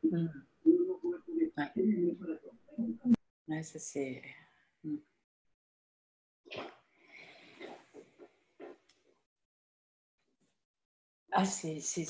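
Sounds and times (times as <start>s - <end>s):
faint wordless vocal sounds: 0.0s - 3.2s.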